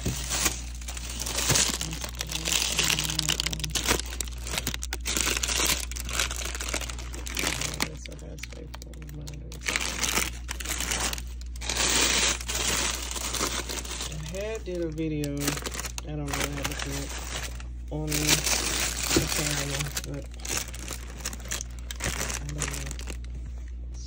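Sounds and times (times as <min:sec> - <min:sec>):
cellophane crinkling: 0:00.0 - 0:23.9.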